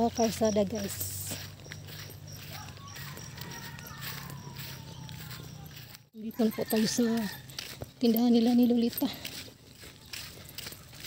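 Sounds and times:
footsteps on dirt road: 0.0 - 11.0.

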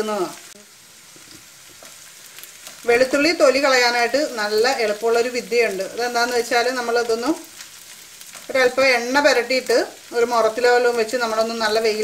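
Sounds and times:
garlic and chillies sizzling in oil: 0.0 - 12.0.

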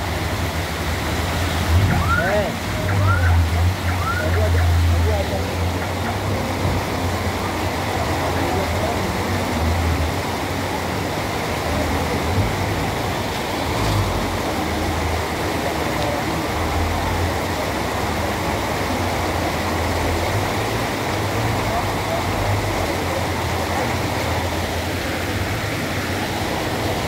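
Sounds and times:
floodwater rushing along gutter: 0.0 - 27.0.

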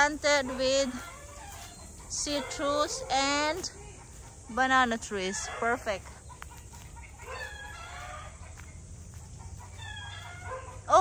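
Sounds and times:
rooster crowing: 0.4 - 4.2, 5.1 - 11.0.

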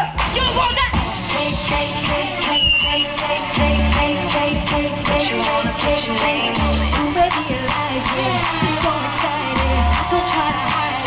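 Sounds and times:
deep bass note: 0.0 - 2.3
pop dance music through pa: 0.0 - 11.0.

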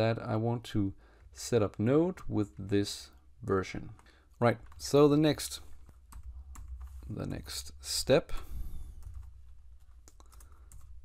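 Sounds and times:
keystrokes on computer keyboard: 5.7 - 7.1, 8.9 - 11.0.

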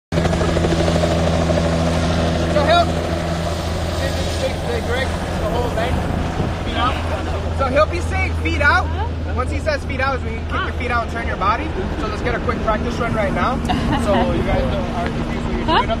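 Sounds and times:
helicopter engine and rotor drone: 0.1 - 16.0.

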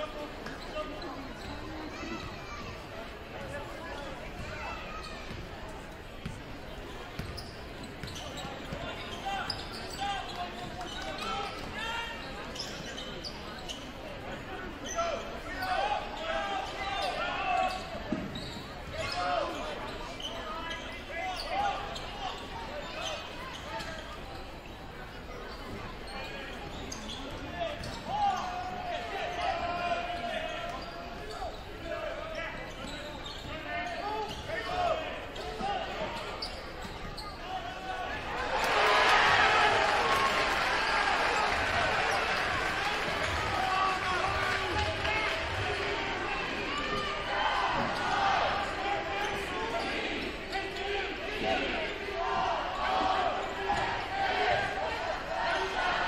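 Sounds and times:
crowd chatter and shouts: 0.0 - 56.0.

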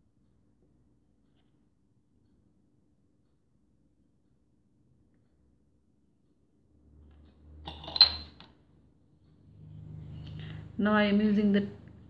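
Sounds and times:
small metallic clinks: 7.7 - 8.5.

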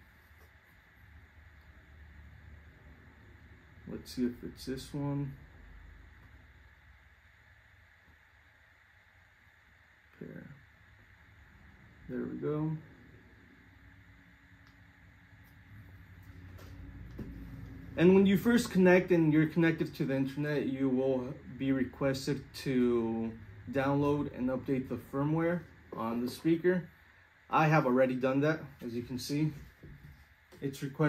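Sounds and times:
faint hiss: 0.0 - 31.0
steady low hum: 0.0 - 31.0.

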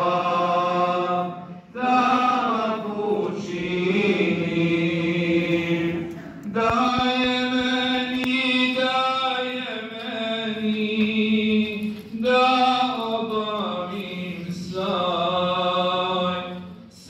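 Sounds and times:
men chanting through microphone: 0.0 - 17.0.

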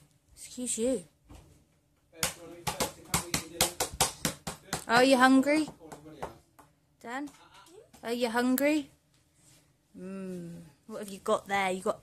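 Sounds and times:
hands tapping a plastic tray: 2.2 - 7.4.

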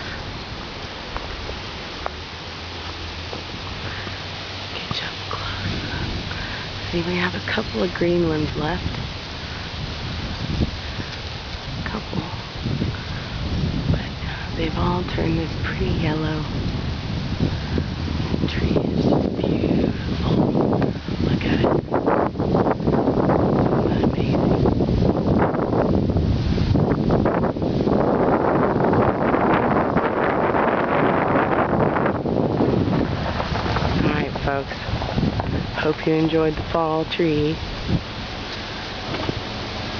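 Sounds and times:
leaves rustling in wind: 0.0 - 39.9
wind rumble on microphone: 0.0 - 39.9.

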